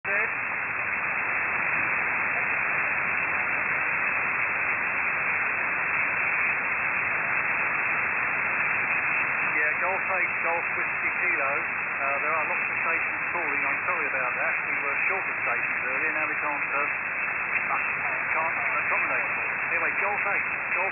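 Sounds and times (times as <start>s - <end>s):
faint voice in radio noise: 0.0s - 0.4s, 1.6s - 4.2s, 9.2s - 20.9s
radio operator's voice: 0.0s - 0.4s, 1.6s - 4.1s, 9.1s - 20.9s
radio static hiss: 0.0s - 20.9s.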